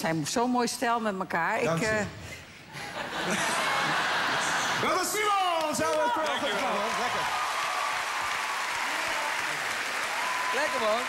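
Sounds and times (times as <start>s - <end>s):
audience applauding: 3.3s - 11.0s.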